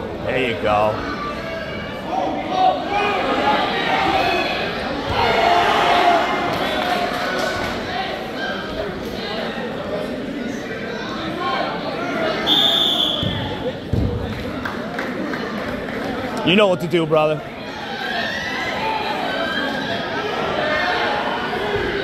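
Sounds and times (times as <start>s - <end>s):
spectators chattering: 0.0s - 22.0s
referee whistle blast: 12.5s - 13.4s.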